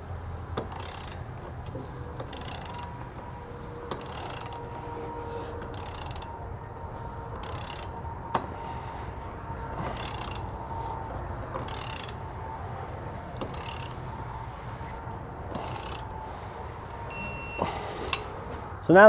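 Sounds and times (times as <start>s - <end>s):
torque wrench ratcheting: 0.6s - 3.3s, 3.9s - 5.0s, 5.6s - 6.4s, 7.4s - 17.5s.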